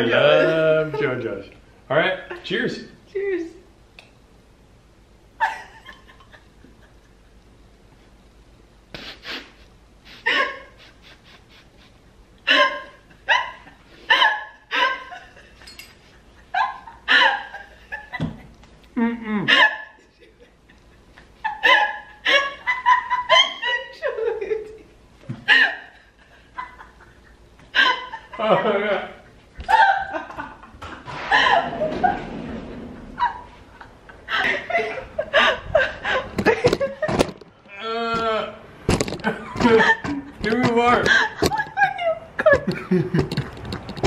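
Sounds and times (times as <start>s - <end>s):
person laughing and gasping: 19.0s - 19.9s, 31.1s - 32.2s, 33.2s - 36.9s.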